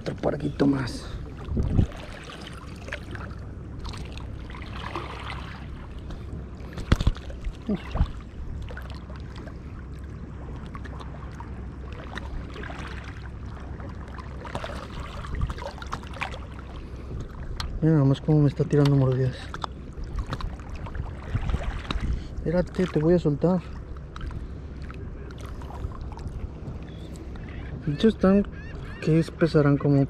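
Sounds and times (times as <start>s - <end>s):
wind on microphone: 0.0s - 3.4s, 4.8s - 9.6s, 14.6s - 15.8s, 20.0s - 22.7s
water lapping at rocks: 0.0s - 30.0s.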